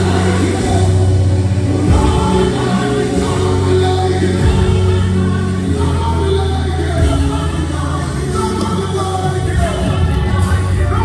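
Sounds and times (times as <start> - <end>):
choir singing gospel: 0.0 - 11.0.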